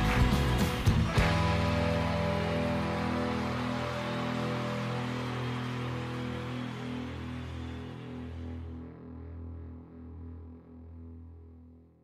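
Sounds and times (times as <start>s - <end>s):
rock band final chord ringing: 1.0s - 8.9s.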